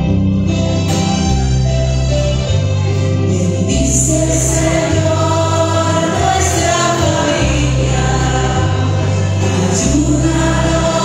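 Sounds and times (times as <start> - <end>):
choir singing a hymn: 3.3 - 11.0.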